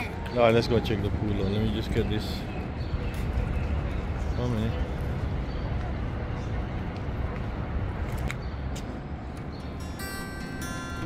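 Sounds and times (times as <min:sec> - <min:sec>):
low rumbling outdoor noise: 0:00.0 - 0:11.0
guitar music: 0:09.6 - 0:11.0.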